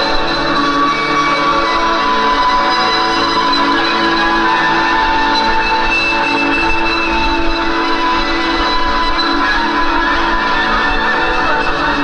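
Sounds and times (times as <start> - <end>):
droning electric guitar: 0.0 - 12.0.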